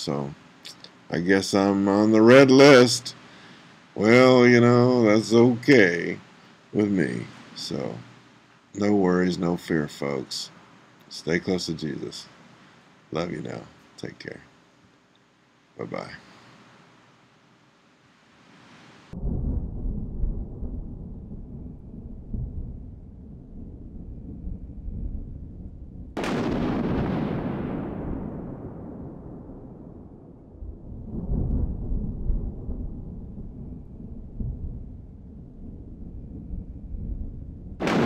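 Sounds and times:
deep rumbling booms: 19.1s - 38.0s.

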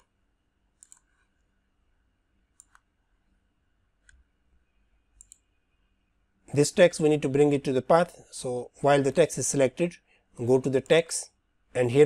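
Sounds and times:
computer mouse clicks: 0.8s - 1.5s, 2.5s - 2.9s, 4.0s - 4.3s, 5.2s - 5.5s.

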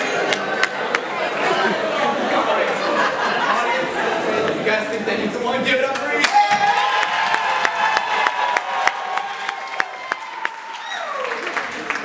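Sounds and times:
crowd cheering and applause: 0.0s - 1.9s, 6.2s - 12.0s.

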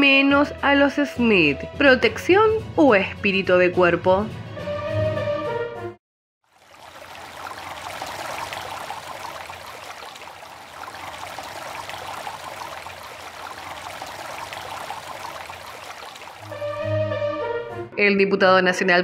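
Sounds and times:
flowing water rushing: 6.5s - 16.8s.

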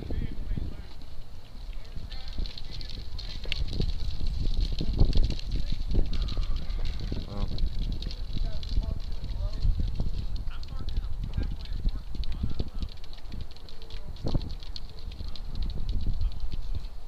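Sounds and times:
rumbling and knocking on microphone: 1.7s - 16.9s.

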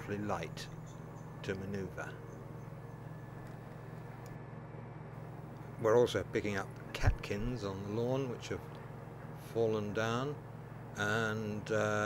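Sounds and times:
ride-on mower engine humming: 0.0s - 12.0s.

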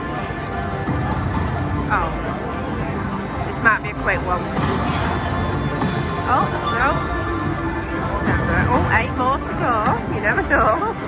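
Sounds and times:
casino din with chatter: 1.4s - 11.0s
sweeping electronic tones: 6.5s - 8.1s.

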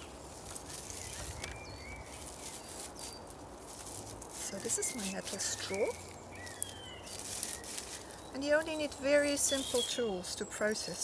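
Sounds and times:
dried stems crackling: 0.0s - 11.0s
faint bird chirps: 9.0s - 10.6s.

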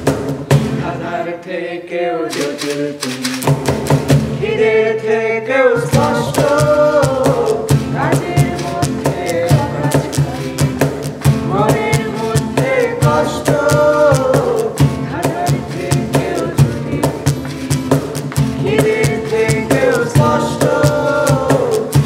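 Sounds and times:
cajon hand drum beat: 0.0s - 1.2s, 2.2s - 4.8s, 5.8s - 22.0s
acoustic guitar: 0.0s - 1.4s, 2.1s - 22.0s
several people singing: 0.5s - 22.0s.

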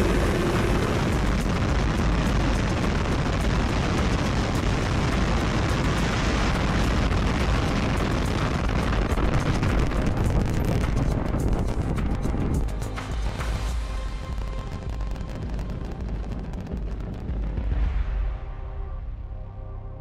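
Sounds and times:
rocket engines rumbling and crackling: 0.0s - 18.0s.

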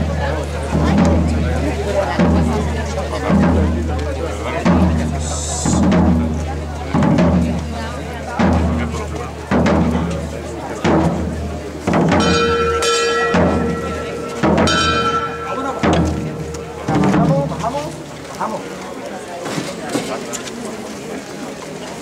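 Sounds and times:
drums beating slow march: 0.0s - 19.0s
high ringing tones: 12.2s - 17.6s.

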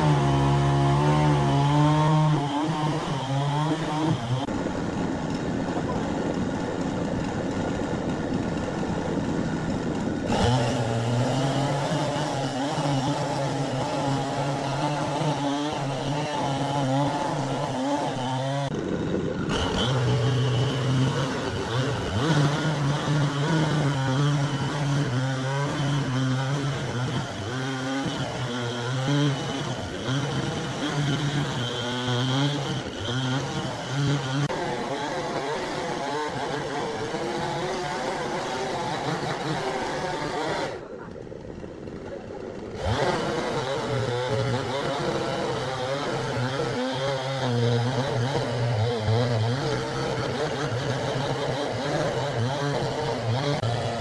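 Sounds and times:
chainsaw cutting log: 0.0s - 54.0s.

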